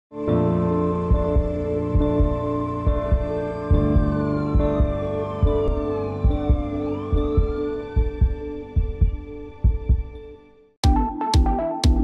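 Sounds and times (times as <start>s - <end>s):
heartbeat thumps: 1.0s - 12.0s
held synthesizer chord: 10.8s - 12.0s.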